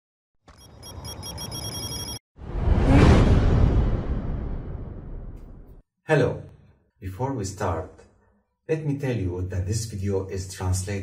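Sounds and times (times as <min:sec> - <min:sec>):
trilling electronic ring: 0:00.6 - 0:02.2
low rumble: 0:02.4 - 0:05.8.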